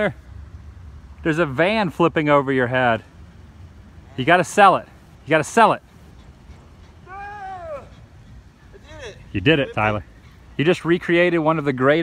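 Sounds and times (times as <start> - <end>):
short falling cry: 7.0 - 8.1.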